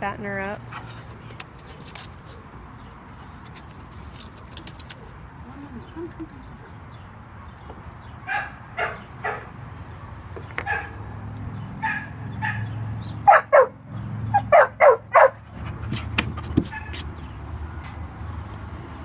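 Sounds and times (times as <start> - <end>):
dog barking: 8.3 - 9.5, 10.6 - 11.0, 11.8 - 12.7, 13.3 - 15.4.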